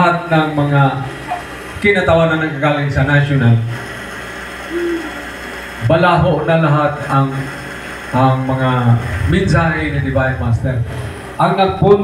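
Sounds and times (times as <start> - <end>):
man talking through microphone: 0.0 - 3.7, 5.8 - 7.5, 8.2 - 12.0
steady background hum: 0.0 - 12.0
man humming mm: 4.7 - 5.3.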